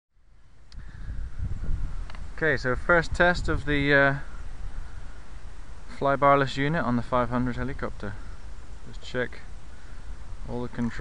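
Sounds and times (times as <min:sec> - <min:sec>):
wind buffeting microphone: 0:00.6 - 0:06.0.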